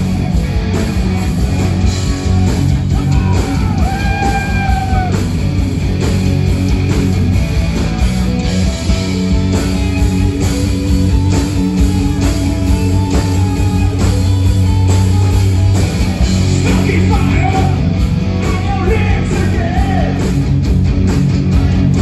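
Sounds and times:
bass guitar: 0.0 - 22.0
drums: 0.0 - 22.0
electric guitars: 0.0 - 22.0.

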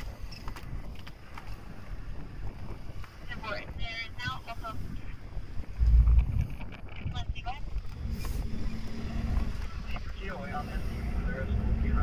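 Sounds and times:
car interior rumble: 0.0 - 12.0
wind on microphone: 0.0 - 12.0
low steady hum: 5.6 - 12.0.

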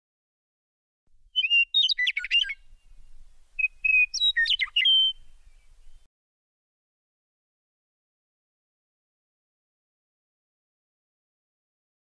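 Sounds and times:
bird song whistled notes: 1.3 - 6.1.

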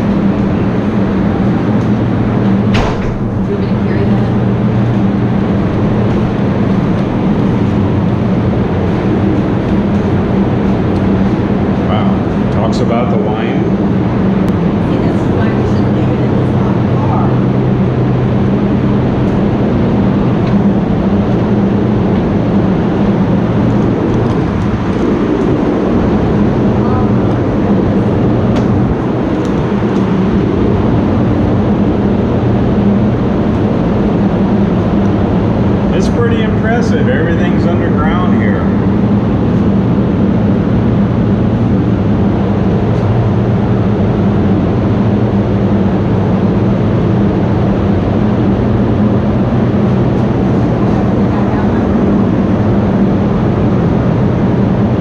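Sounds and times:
low mechanical hum: 0.0 - 55.0
person's voice: 3.5 - 4.4.

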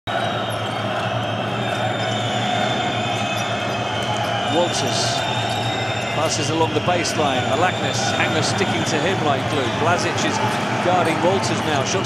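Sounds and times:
crowd din: 0.1 - 12.0.

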